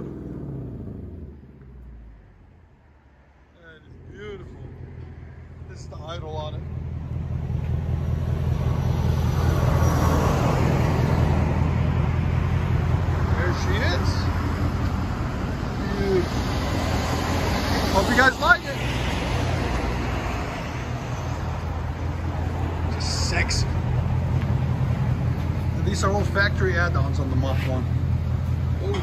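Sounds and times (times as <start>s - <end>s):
car engine idling: 0.0s - 29.0s.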